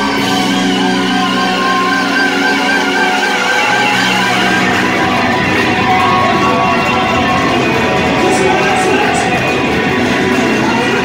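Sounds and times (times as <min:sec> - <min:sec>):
electric guitar lead: 0:00.0 - 0:11.0
live heavy metal band: 0:00.0 - 0:11.0.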